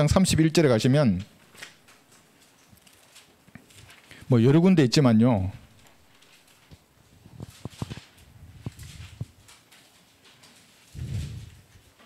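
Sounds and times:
pages being turned: 1.4s - 4.2s, 5.7s - 12.0s.

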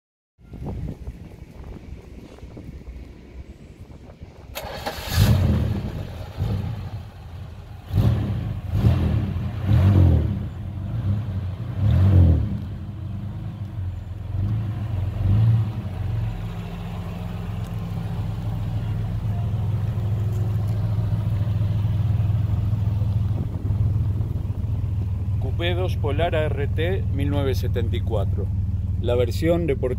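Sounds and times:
car engine idling: 0.8s - 29.9s
car engine starting and revving: 4.4s - 29.9s.

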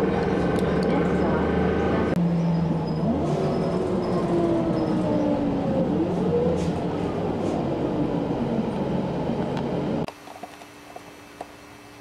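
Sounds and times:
vehicle ride rumble: 0.0s - 11.5s.

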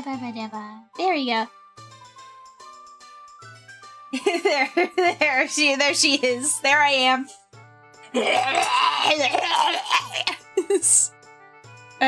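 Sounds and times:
quiet background music: 0.0s - 12.0s
woman laughing: 4.1s - 5.5s, 9.1s - 11.1s.

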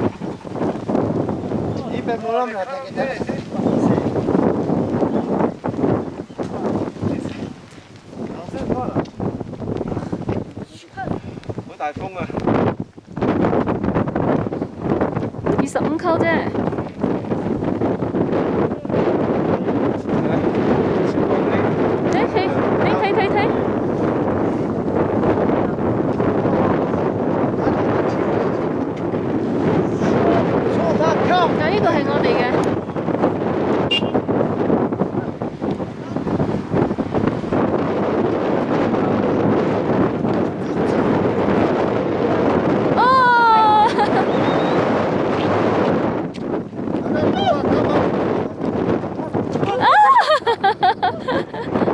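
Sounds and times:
cloth flags flapping: 0.0s - 51.9s
wind buffeting microphone: 0.0s - 51.9s.

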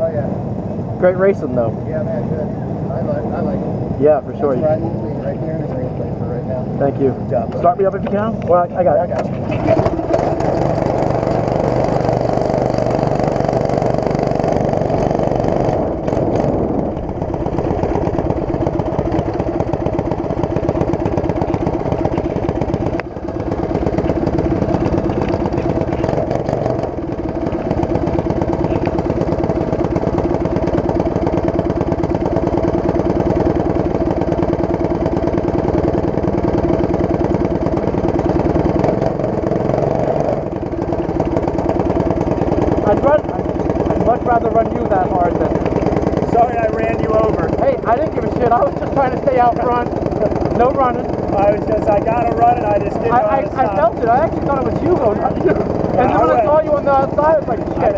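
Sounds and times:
kart engine running at low revs: 0.0s - 57.9s.

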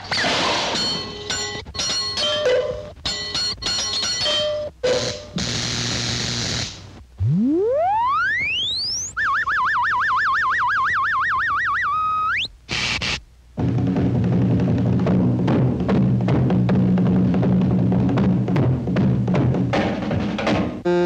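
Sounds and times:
electric buzz: 5.4s - 9.1s
high warbling tone: 7.1s - 12.5s
whistle-like tone sliding up: 7.2s - 12.5s.

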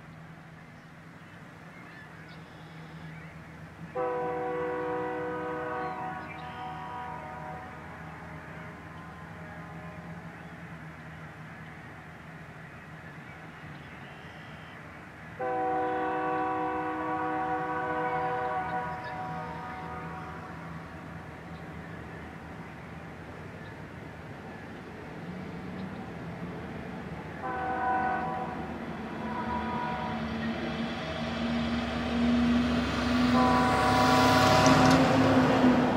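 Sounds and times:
locomotive air horn blasts: 3.9s - 10.3s, 15.4s - 21.1s, 27.4s - 30.6s, 32.5s - 35.6s.

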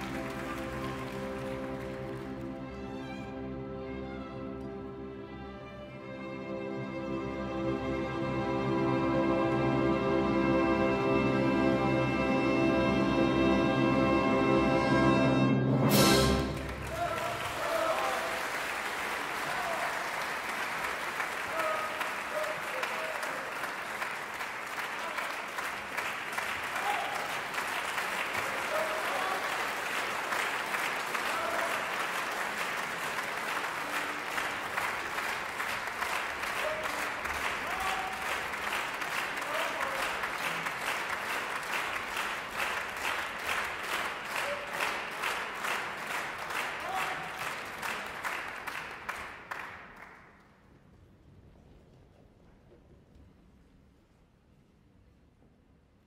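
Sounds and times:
audience applauding: 0.0s - 3.4s, 16.2s - 50.6s.

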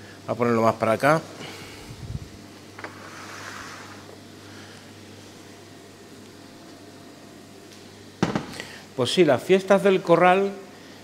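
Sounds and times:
faint kitchen hum: 0.0s - 11.0s.

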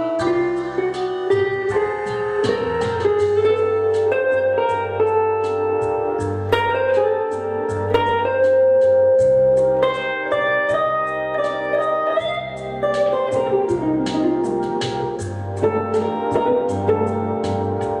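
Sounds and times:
solo electric guitar: 0.0s - 18.0s.

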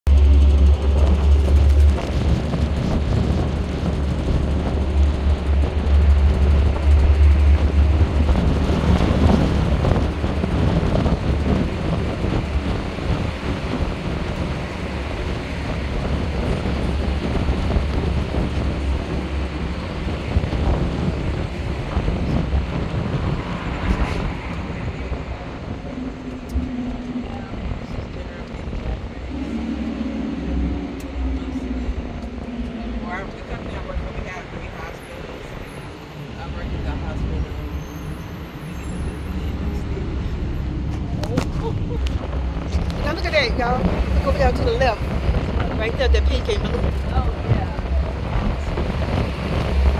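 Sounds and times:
bus road and engine rumble: 0.0s - 49.9s
wind buffeting microphone: 0.1s - 49.9s.

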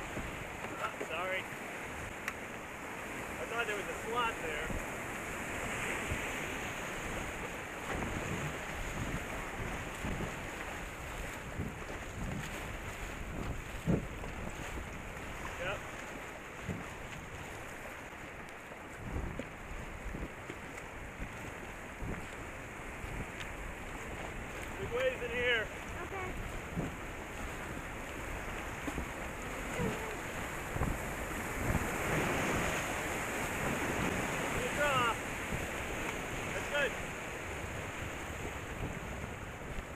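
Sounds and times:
wind buffeting microphone: 0.0s - 3.4s, 4.4s - 39.9s
whitewater rushing: 0.0s - 11.8s, 12.6s - 39.9s.

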